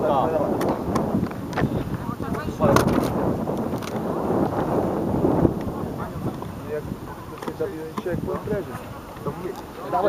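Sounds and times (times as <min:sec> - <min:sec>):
faint distant voices: 0:00.0 - 0:10.0
wind buffeting microphone: 0:00.0 - 0:10.0.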